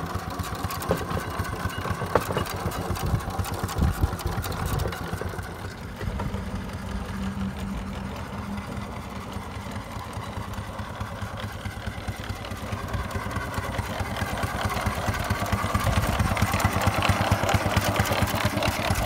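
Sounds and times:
steam engine exhaust chuffs: 0.0 - 19.0.

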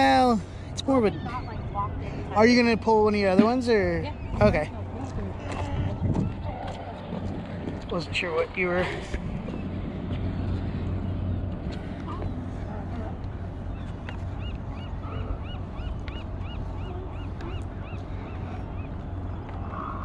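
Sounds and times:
steady low rumble: 0.0 - 20.0
gull calling: 13.7 - 20.0.

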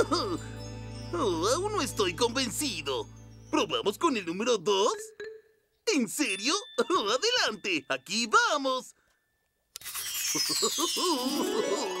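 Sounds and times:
magical shimmering sparkle effect: 0.0 - 4.5, 9.8 - 12.0.

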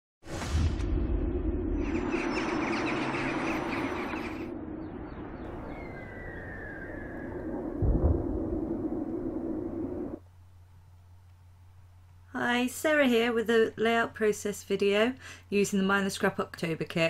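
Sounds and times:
low boom: 0.3 - 10.2
steady low drone: 0.8 - 10.2.

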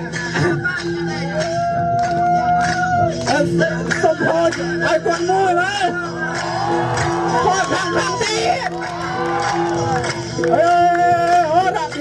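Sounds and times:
traditional dance music: 0.0 - 12.0.

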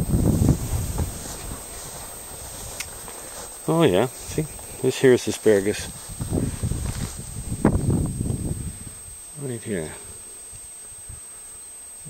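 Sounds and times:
tall grass rustling: 0.0 - 12.0.

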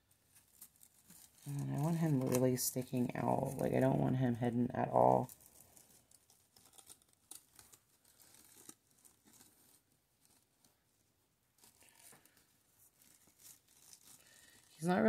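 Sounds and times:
plastic mesh crinkling: 0.2 - 4.0, 4.8 - 15.0.

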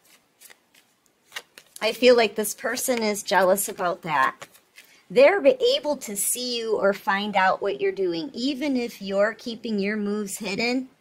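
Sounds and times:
woman speaking: 1.8 - 4.5, 5.1 - 11.0.

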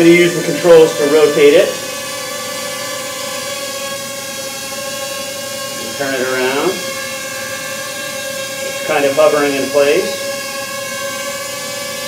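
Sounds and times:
quadcopter propellers whining: 0.0 - 12.0.

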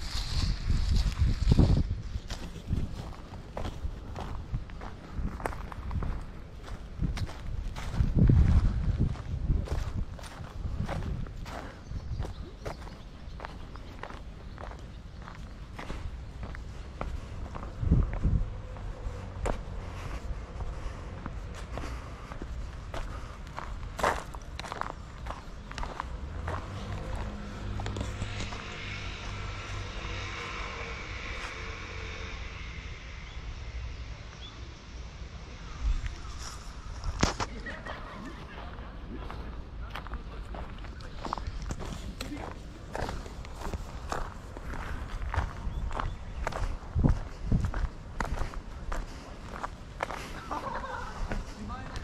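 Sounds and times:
footsteps on dirt path: 0.0 - 33.0, 35.9 - 52.0
low rumble: 0.0 - 52.0.

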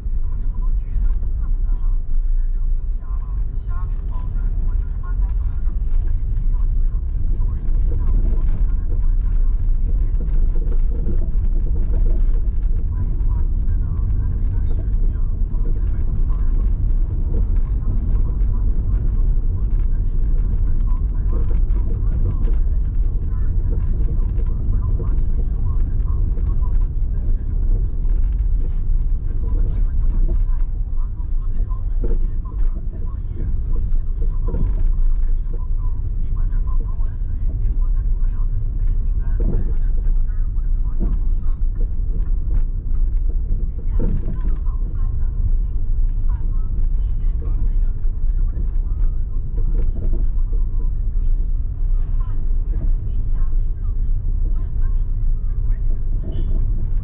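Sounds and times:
car engine: 0.0 - 57.0
tyre and road noise: 0.0 - 57.0.

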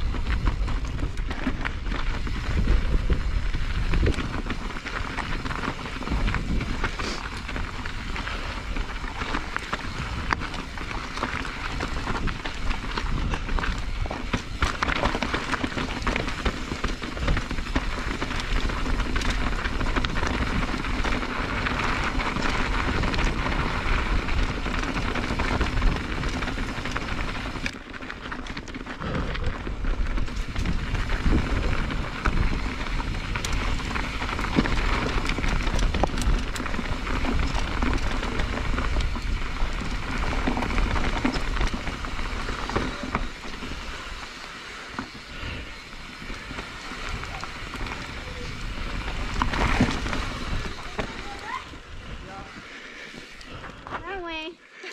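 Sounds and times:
bike rattling over bumps: 0.0 - 54.4
knobby tyres crunching over gravel: 0.0 - 54.6.

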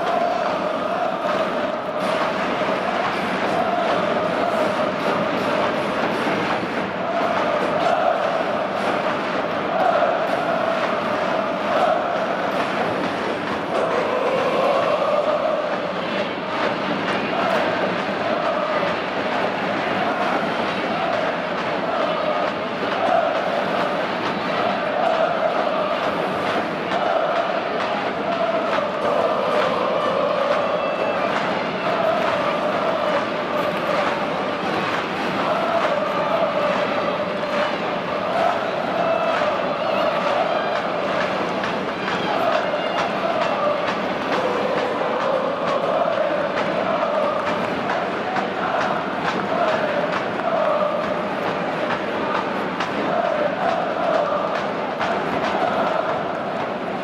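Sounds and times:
football supporters chanting: 0.0 - 57.0
large crowd noise: 0.0 - 57.0.

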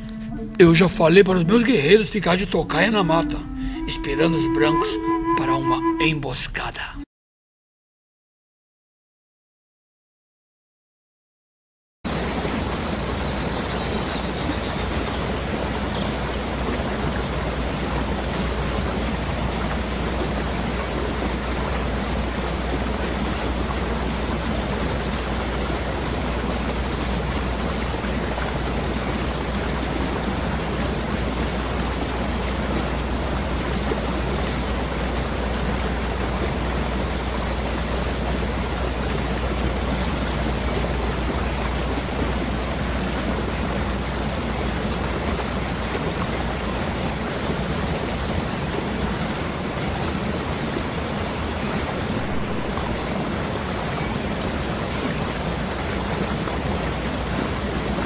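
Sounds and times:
steady outdoor hiss: 0.0 - 6.8, 12.1 - 58.0
bird chirping: 27.1 - 29.4, 31.0 - 32.5.

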